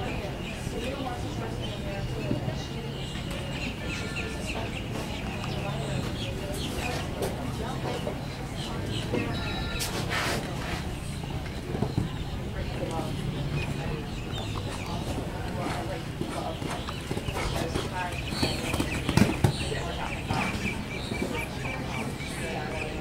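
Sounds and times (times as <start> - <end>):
background voices: 0.0 - 23.0.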